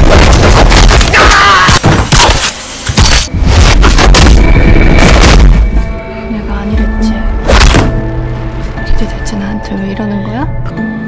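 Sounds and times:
dark film score low tones: 0.0 - 11.0.

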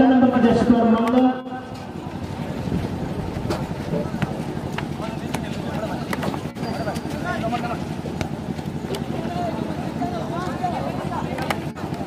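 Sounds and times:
man's voice: 0.0 - 1.7
crowd of spectators talking: 0.0 - 12.0
wind on microphone: 1.7 - 4.8.

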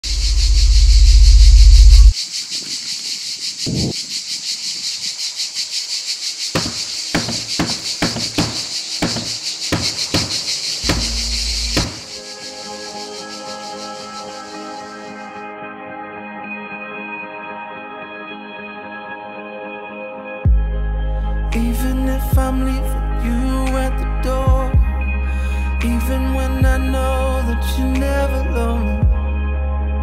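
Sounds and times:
high fast-pulsing buzz: 0.0 - 2.1, 6.5 - 15.4
loud low rumble: 0.0 - 2.1
heavy thumps: 6.6 - 12.2
soft ambient music chords: 20.5 - 30.0.

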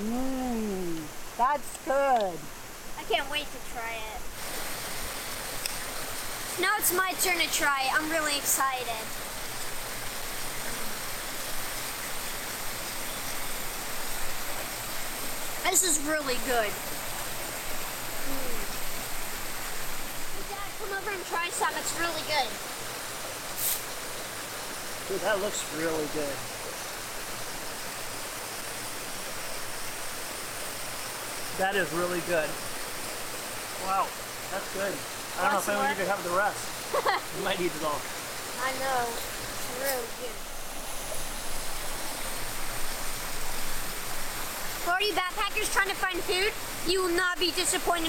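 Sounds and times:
creek water rushing: 0.6 - 48.0
short high hiss: 23.5 - 24.2.

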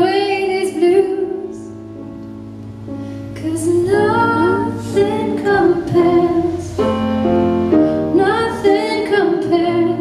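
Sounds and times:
woman singing into a microphone: 0.0 - 1.8, 3.4 - 7.0, 7.9 - 10.0.

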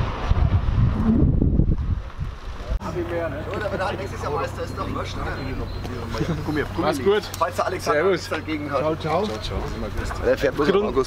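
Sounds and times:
wind buffeting microphone: 0.0 - 2.8.

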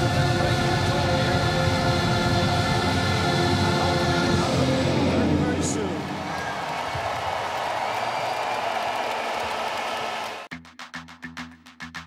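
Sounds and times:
crowd cheering and applauding: 5.1 - 10.5
percussive music with fast beat: 10.5 - 12.0.

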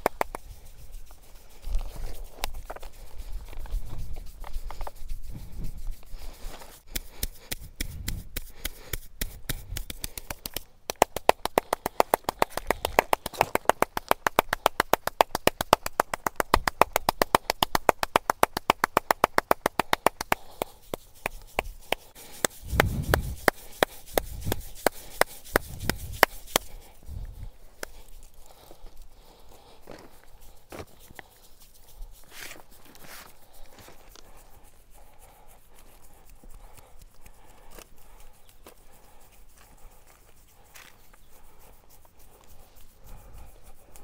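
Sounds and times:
hands tapping a scalp: 0.0 - 44.0.

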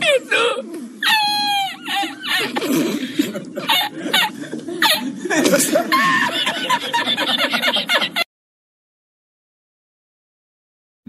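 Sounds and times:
man laughing hard: 0.0 - 8.3.

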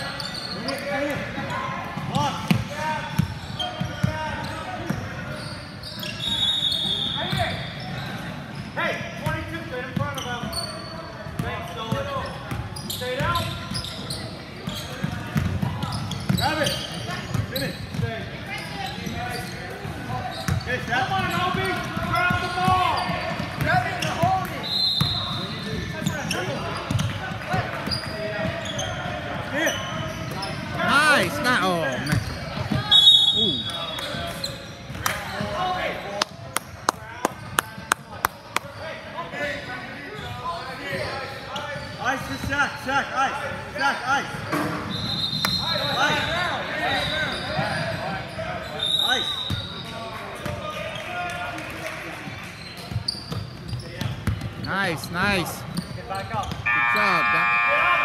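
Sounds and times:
sneaker squeaks on hardwood: 0.0 - 1.6, 2.4 - 9.4, 10.0 - 27.2, 27.8 - 30.8, 31.9 - 35.6, 44.5 - 50.6, 52.6 - 54.7, 55.6 - 56.8
voices calling out: 54.9 - 58.0.

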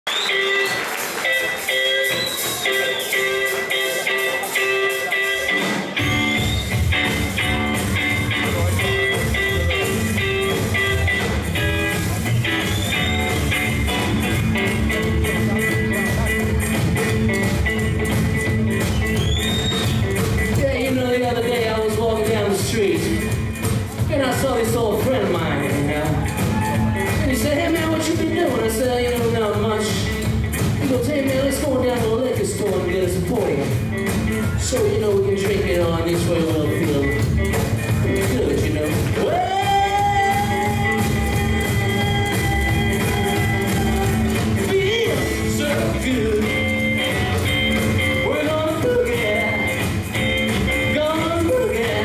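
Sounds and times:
drums: 0.0 - 52.0
guitars: 0.1 - 52.0
rockabilly band playing: 0.1 - 52.0
double bass: 6.0 - 52.0.

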